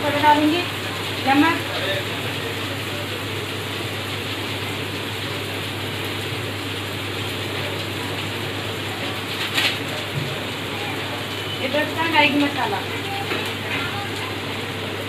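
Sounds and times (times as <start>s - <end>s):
vegetables sizzling in hot oil: 0.0s - 15.0s.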